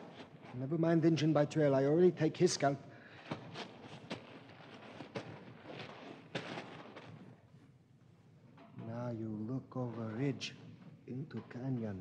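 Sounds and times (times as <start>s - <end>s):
scrapes and rustles of crawling: 2.4s - 7.7s.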